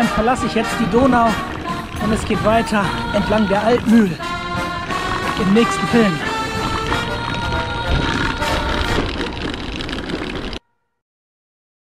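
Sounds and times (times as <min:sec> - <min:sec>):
street noise: 0:00.0 - 0:10.6
vehicle running: 0:00.0 - 0:10.6.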